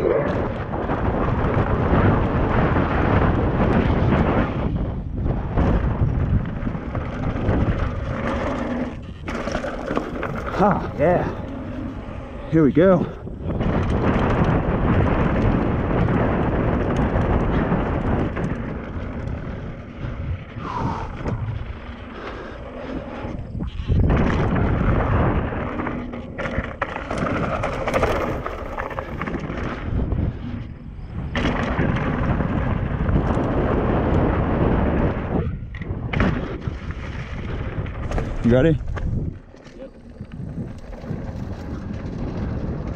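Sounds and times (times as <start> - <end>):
bike tyres rumbling on dirt: 0.0 - 42.9
wind on microphone: 0.0 - 42.9
bike frame and chain rattling: 5.8 - 20.3.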